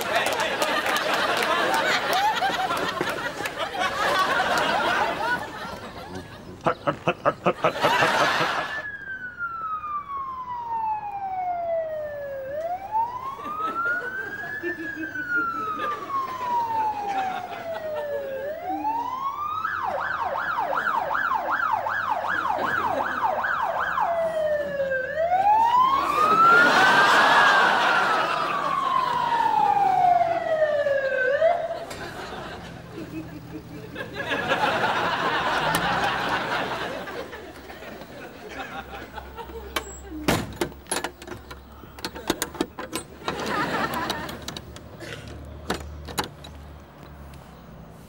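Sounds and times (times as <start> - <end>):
ambulance siren wailing and yelping: 0.0 - 44.9
passing vehicle rush: 21.6 - 40.2.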